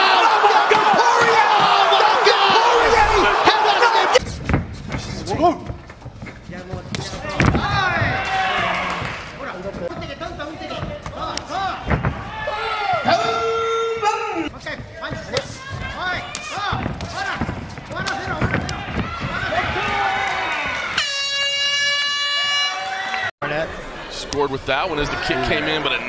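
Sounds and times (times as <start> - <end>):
excited voices shouting: 0.0 - 4.2.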